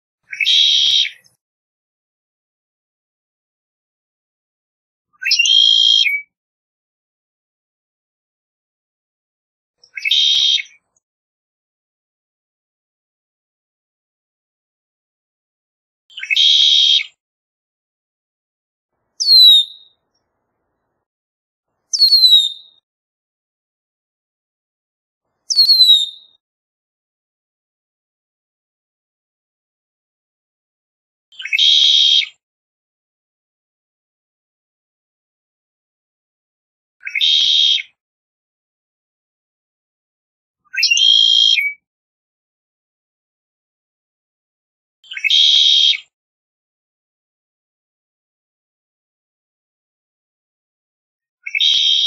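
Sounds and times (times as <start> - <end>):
bird whistled calls: 0.3 - 1.3, 5.2 - 6.3, 9.8 - 10.8, 16.1 - 17.2, 19.2 - 20.0, 21.9 - 22.8, 25.5 - 26.4, 31.4 - 32.3, 37.0 - 38.0, 40.7 - 41.8, 45.1 - 46.0, 51.4 - 52.0
blackbird song with buzzy trill: 0.3 - 1.4, 5.2 - 6.3, 16.1 - 17.2, 19.2 - 20.0, 21.9 - 22.8, 25.5 - 26.4, 31.4 - 32.4, 40.7 - 41.8, 45.1 - 46.1, 51.4 - 52.0.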